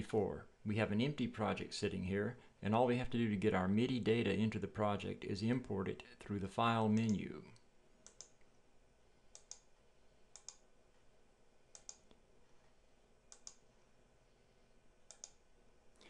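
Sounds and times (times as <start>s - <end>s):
computer mouse clicks: 8.0s - 8.5s, 9.3s - 9.7s, 10.3s - 10.7s, 11.7s - 12.2s, 13.3s - 13.6s, 15.1s - 15.4s.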